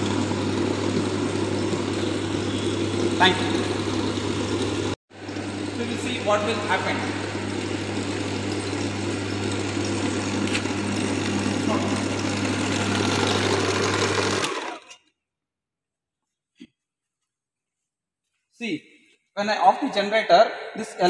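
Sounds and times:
motor humming: 0.0s - 15.0s.

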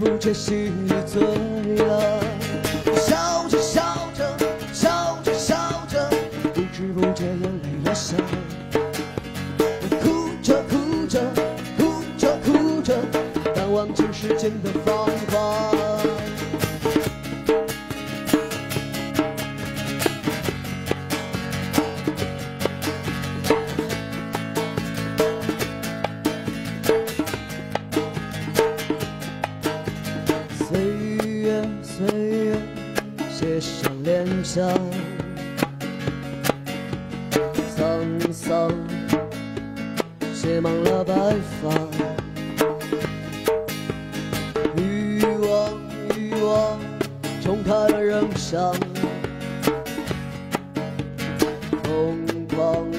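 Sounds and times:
man singing: 0.0s - 8.9s, 9.7s - 16.8s, 30.4s - 35.6s, 37.4s - 39.5s, 40.3s - 42.5s, 44.6s - 49.4s, 51.6s - 52.9s
hand drum: 0.0s - 52.9s
strummed acoustic guitar: 0.0s - 52.9s.

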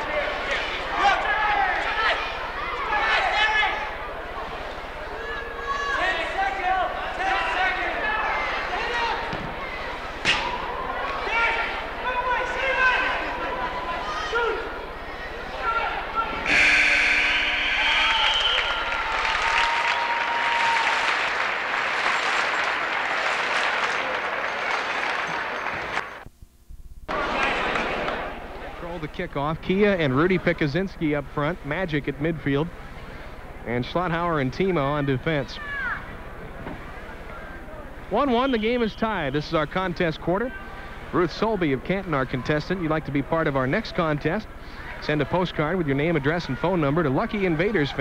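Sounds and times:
arena crowd noise with voices: 0.0s - 26.2s, 27.1s - 48.0s
crowd cheering: 0.0s - 26.2s, 27.1s - 29.0s
arena horn blast: 16.3s - 20.0s.

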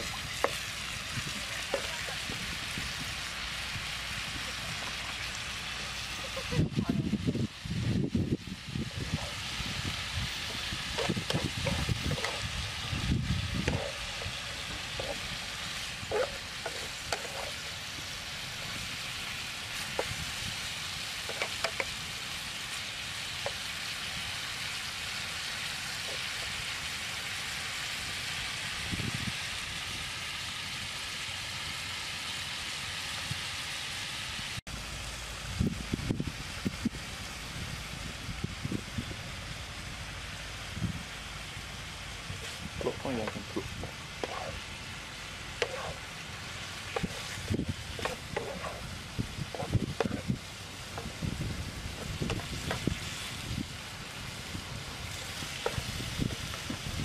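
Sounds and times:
spatula stirring in pan: 0.0s - 7.2s, 8.6s - 26.7s, 42.2s - 53.7s, 54.3s - 57.0s
stir-fry sizzling in a pan: 0.0s - 57.0s.

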